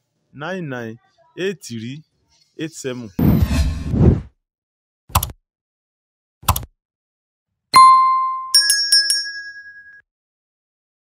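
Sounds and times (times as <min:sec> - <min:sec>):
bell-like dings: 0:07.8 - 0:10.0.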